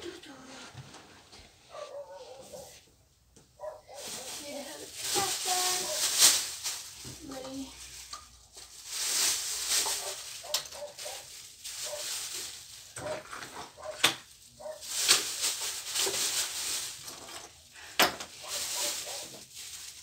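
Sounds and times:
clothes rustling: 0.0 - 2.8, 3.6 - 13.9, 14.6 - 20.0.

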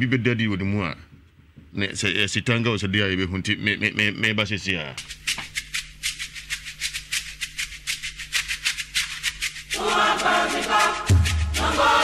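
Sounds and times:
shaker rhythm: 5.0 - 12.0
people singing: 9.7 - 12.0.

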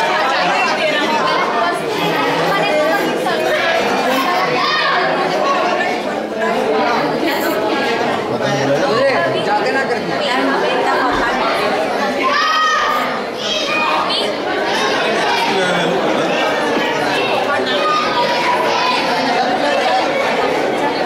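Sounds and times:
group of people chattering: 0.0 - 21.0.

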